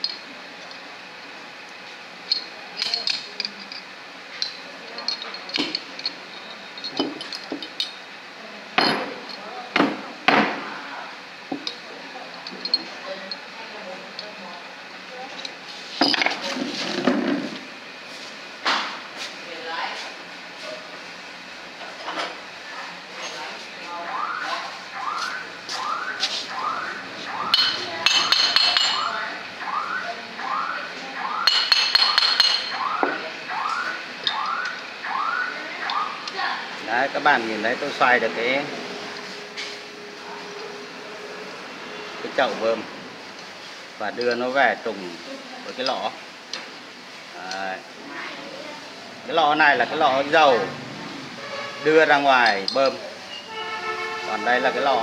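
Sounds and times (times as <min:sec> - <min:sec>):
steel tool tapping metal: 0:27.5 - 0:29.1, 0:31.4 - 0:32.8.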